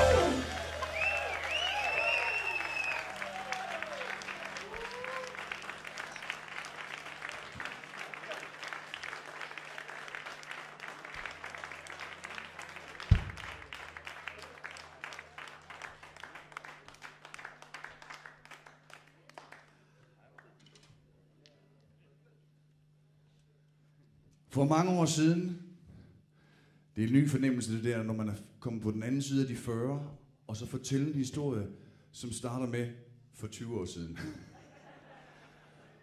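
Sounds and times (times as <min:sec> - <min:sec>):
audience cheering: 0:00.0 - 0:16.8
audience applauding: 0:00.0 - 0:20.6
low thump: 0:13.1 - 0:13.5.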